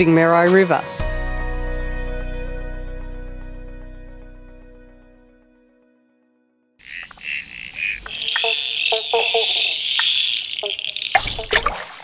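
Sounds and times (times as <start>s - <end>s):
frogs calling in chorus: 6.8s - 12.0s
water splash: 8.0s - 12.0s.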